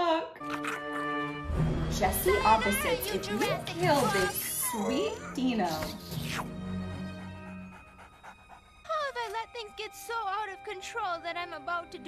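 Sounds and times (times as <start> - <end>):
soft background music: 0.0 - 12.0
cartoon character panting: 5.6 - 9.3.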